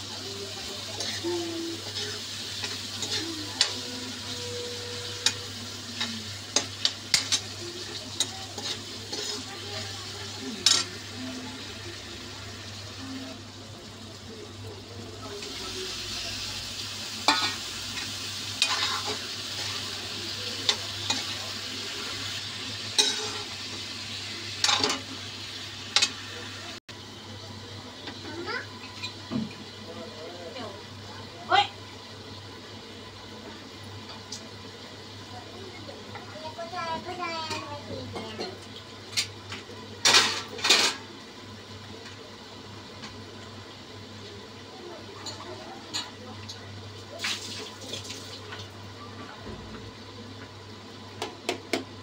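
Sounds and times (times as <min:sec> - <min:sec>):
vegetables sizzling in oil: 0:00.0 - 0:52.0
spoon scraping pan: 0:01.0 - 0:09.6.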